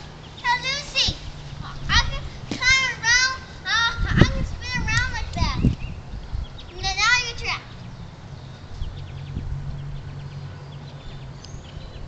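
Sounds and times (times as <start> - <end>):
young children vocalizing: 0.0 - 4.8.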